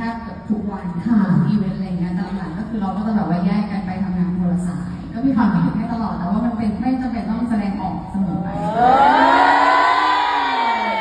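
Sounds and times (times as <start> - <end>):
crowd screaming and cheering: 8.5 - 11.0.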